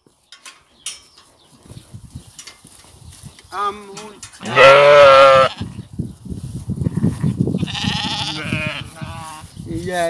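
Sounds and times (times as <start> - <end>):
low scuffling and shuffling: 0.0 - 10.0
sheep bleating: 4.4 - 5.8, 7.6 - 9.5.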